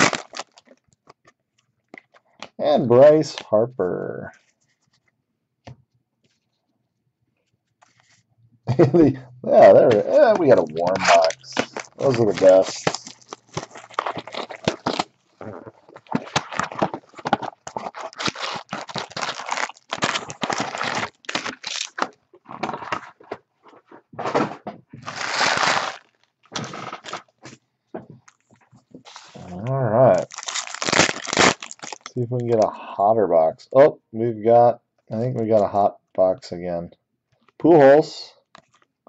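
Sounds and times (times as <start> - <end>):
wrapper tearing: 0.0 - 1.2, 10.1 - 23.2, 25.0 - 27.4, 30.1 - 32.2
wrappers crinkling: 0.0 - 1.2, 10.0 - 23.3, 25.0 - 27.6, 30.1 - 32.2.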